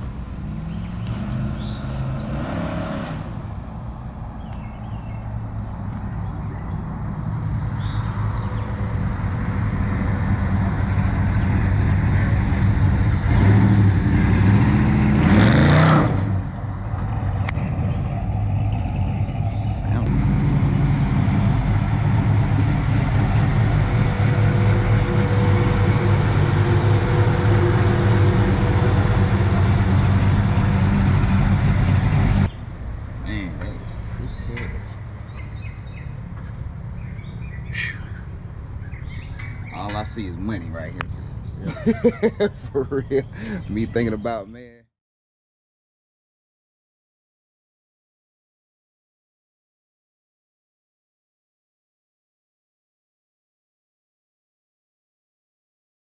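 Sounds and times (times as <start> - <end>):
car engine revving: 6.4 - 32.5.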